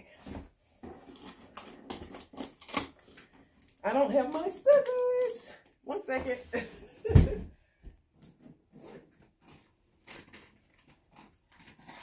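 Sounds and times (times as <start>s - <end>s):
fingernails scratching packing tape: 8.8s - 12.0s.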